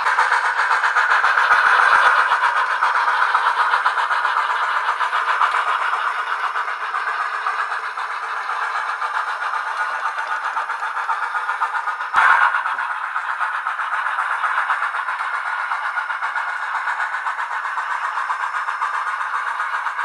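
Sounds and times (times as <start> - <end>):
steam locomotive chuffing from speaker: 0.0 - 20.0.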